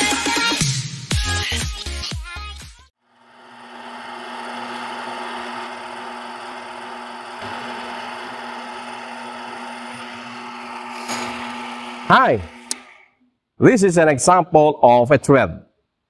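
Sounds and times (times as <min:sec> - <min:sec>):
lathe motor hum: 0:03.1 - 0:13.1.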